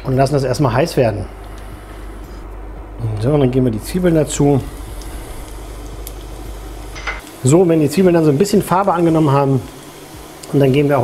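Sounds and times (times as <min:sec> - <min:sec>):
low hum: 0:00.0 - 0:11.0
onion sizzling in a frying pan: 0:00.2 - 0:11.0.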